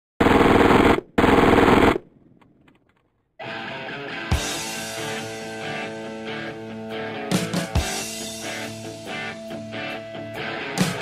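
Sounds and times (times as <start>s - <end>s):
submachine gun automatic fire: 0.2s - 2.4s
music: 3.4s - 11.0s.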